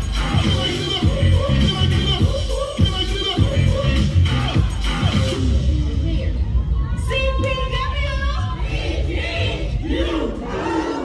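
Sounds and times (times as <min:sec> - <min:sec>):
group shouting a chant in unison: 0:08.4 - 0:11.0.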